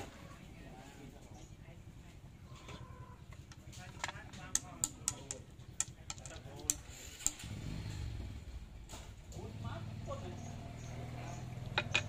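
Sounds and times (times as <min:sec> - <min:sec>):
chess pieces clicking on board: 0:04.0 - 0:07.4.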